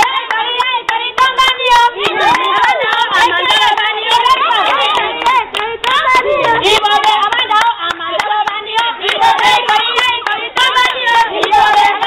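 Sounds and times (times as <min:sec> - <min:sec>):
group singing and calling out: 0:00.0 - 0:12.0
hands clapping in rhythm: 0:00.0 - 0:12.0.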